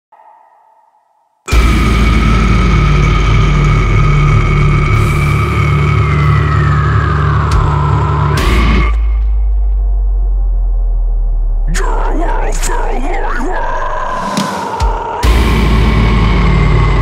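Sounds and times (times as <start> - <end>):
sudden loud hit: 1.5 - 6.5
low rumble drone: 1.5 - 14.3, 15.2 - 17.0.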